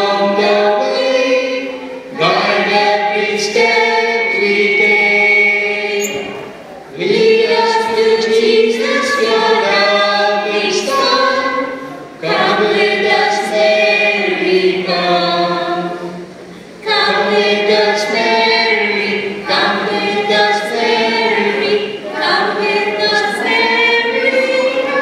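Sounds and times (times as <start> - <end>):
group singing a hymn unaccompanied: 0.0 - 25.0.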